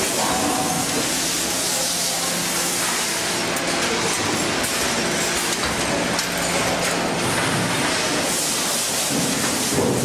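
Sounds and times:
packaging machine running: 0.0 - 10.0.

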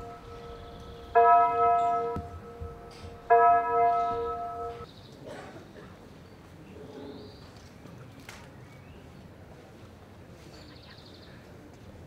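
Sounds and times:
bell ringing: 0.0 - 4.8.

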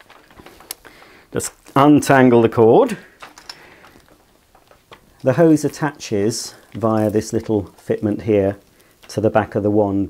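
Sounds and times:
light plastic clicks and rustles: 0.0 - 9.7.

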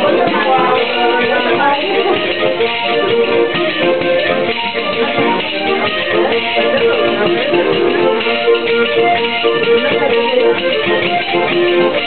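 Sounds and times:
live folk music: 0.0 - 12.0.

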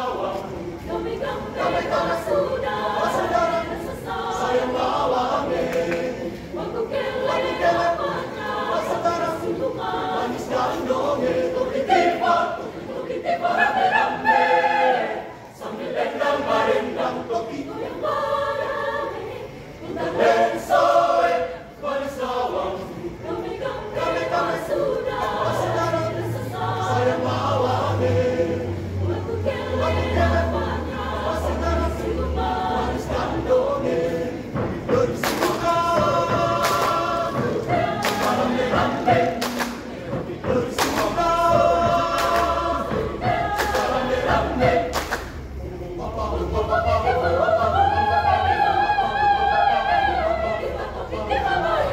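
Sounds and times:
mixed choir singing: 0.0 - 51.9.

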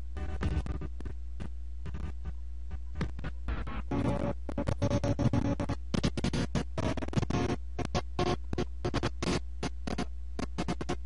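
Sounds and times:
low electrical hum: 0.0 - 11.0
irregular clicks and crackles: 2.9 - 11.0.

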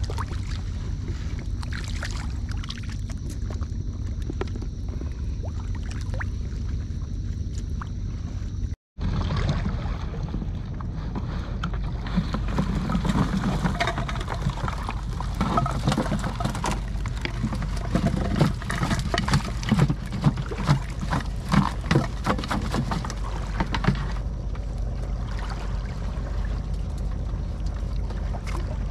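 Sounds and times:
low rumble: 0.0 - 28.9
water and fish splashing: 0.0 - 28.9.

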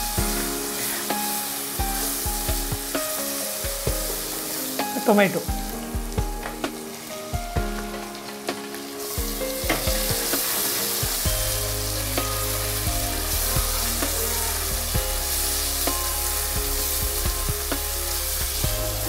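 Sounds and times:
vegetables sizzling in hot oil: 0.0 - 19.0.

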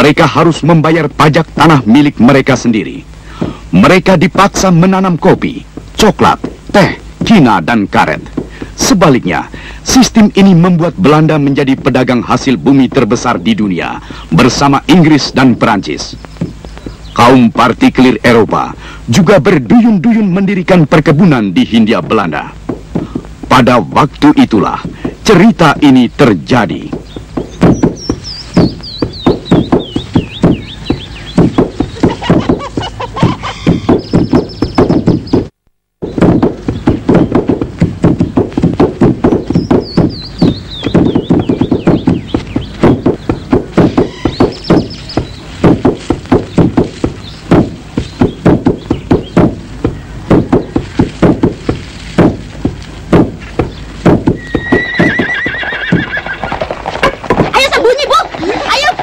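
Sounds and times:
wooden pestles pounding rice: 3.3 - 13.2, 14.0 - 18.6, 19.4 - 55.2.

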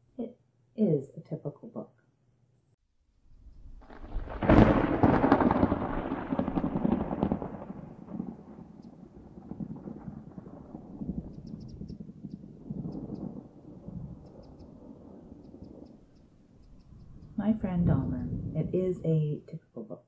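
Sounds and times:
thunder crack and rumble: 3.4 - 19.2.

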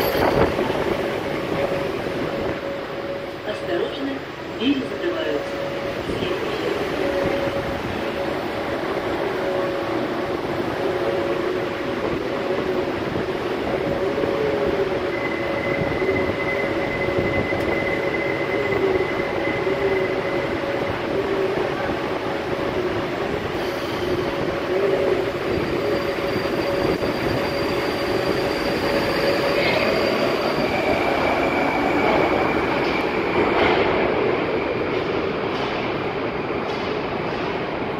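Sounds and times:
metro train rumble with whine: 0.0 - 37.9.

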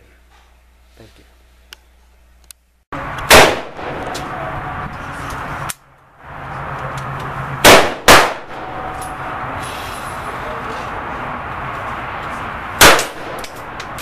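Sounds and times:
steady noisy background: 0.2 - 14.0
pistol shots: 3.3 - 4.2, 7.6 - 8.9, 12.8 - 13.8.

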